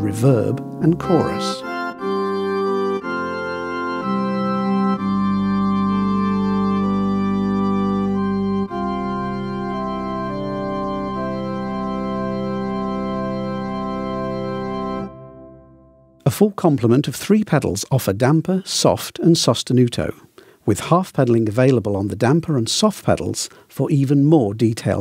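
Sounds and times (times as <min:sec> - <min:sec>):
digital organ sustained chords: 0:00.0 - 0:16.2.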